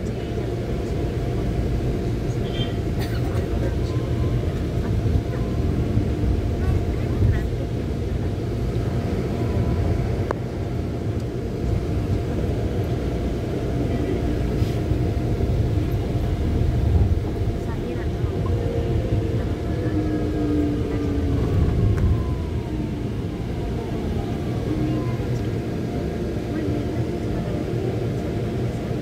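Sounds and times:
vehicle engine and road rumble: 0.0s - 29.0s.

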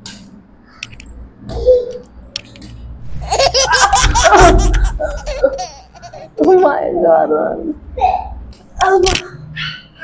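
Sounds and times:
woman laughing loudly: 3.3s - 6.2s.

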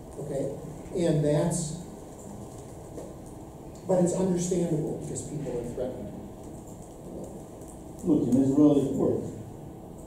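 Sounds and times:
room noise hiss and rumble: 0.0s - 10.0s.

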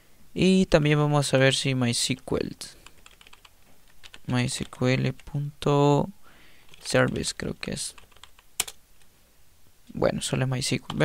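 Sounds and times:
computer keyboard keystrokes: 2.8s - 4.3s, 8.0s - 8.8s.

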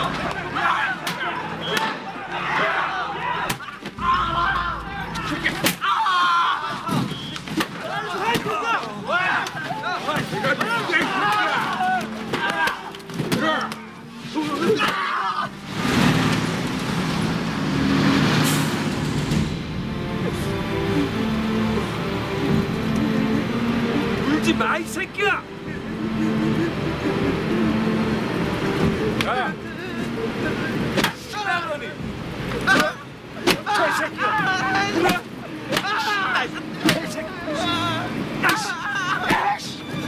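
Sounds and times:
background music with sustained notes: 0.0s - 6.8s, 7.8s - 40.0s
men's strained raised voices: 0.0s - 15.6s, 20.1s - 40.0s
truck engines and tyres: 0.0s - 40.0s
sharp impacts: 3.5s - 7.8s, 15.7s - 20.5s.

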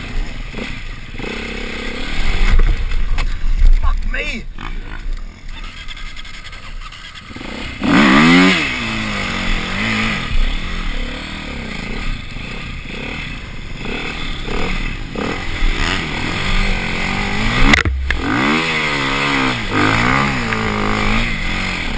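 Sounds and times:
off-road motorcycle engine revving: 0.0s - 21.9s
sharp knock: 17.6s - 18.3s.

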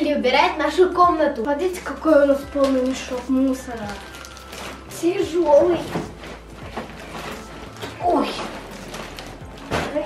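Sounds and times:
plastic bag rustling: 0.4s - 10.0s.

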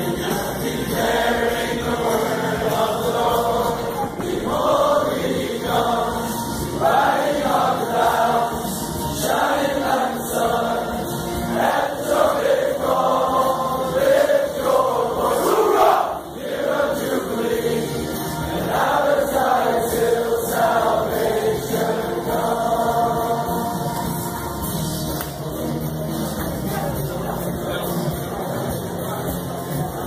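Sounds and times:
men singing a worship song: 0.0s - 24.4s.

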